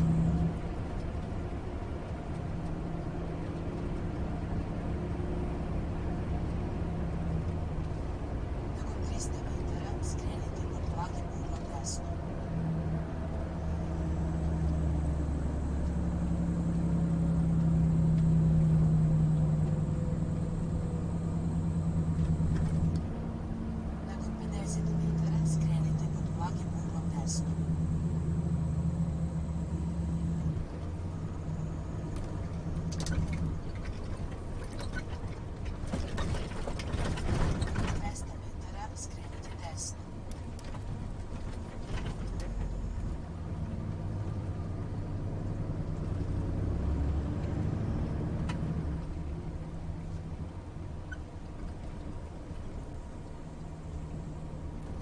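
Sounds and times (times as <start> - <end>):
truck diesel engine hum: 0.0 - 55.0.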